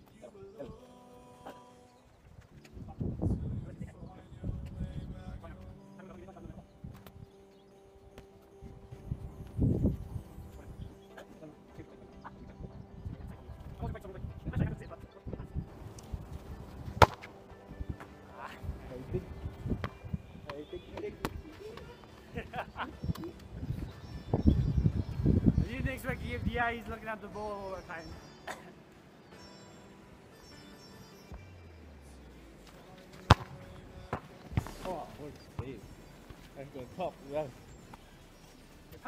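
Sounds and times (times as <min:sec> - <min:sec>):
faint voices outdoors: 0:00.0 - 0:39.0
football kicked hard: 0:17.0 - 0:17.3, 0:33.2 - 0:35.0.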